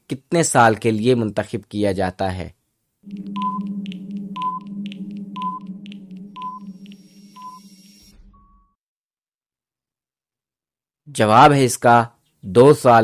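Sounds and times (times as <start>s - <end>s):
low electronic hum: 3.0s - 8.6s
short high beeps: 3.1s - 8.7s.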